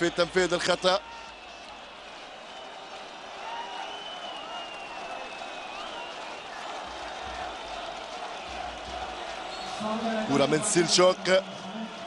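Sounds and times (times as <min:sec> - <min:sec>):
people clapping: 0:00.0 - 0:12.0
stadium crowd noise: 0:00.0 - 0:12.0
long high whistle: 0:03.5 - 0:06.4.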